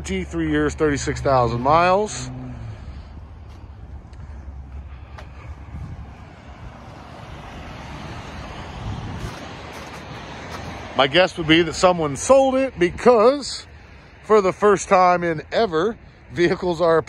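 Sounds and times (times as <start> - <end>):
passing road traffic hiss: 0.0 - 17.0
wind rumble on microphone: 2.3 - 13.3.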